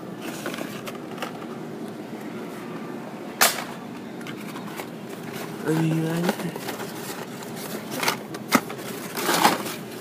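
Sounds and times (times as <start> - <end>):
faint clicks of handled toy packaging: 4.2 - 10.0.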